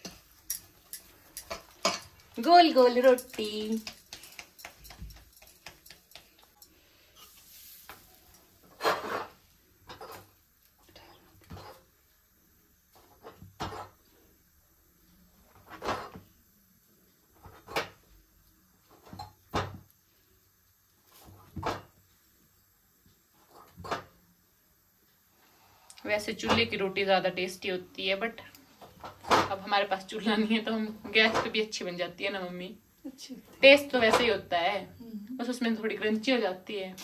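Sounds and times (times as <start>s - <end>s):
utensils knocking against a pan: 0.0s - 6.7s.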